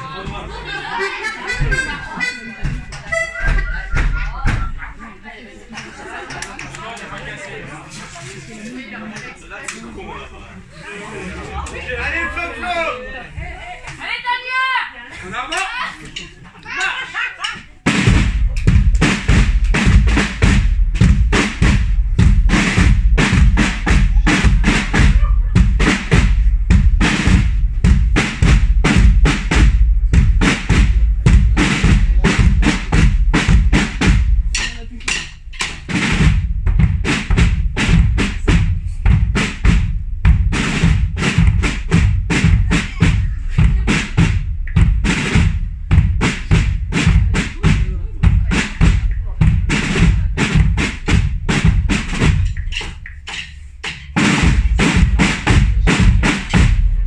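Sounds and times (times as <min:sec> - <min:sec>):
drum band playing march rhythm: 0:00.0 - 0:04.8, 0:17.5 - 0:57.0.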